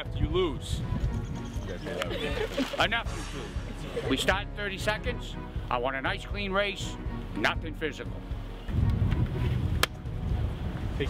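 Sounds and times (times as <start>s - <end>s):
wind rumbling on microphone: 0.2s - 1.7s, 8.7s - 11.0s.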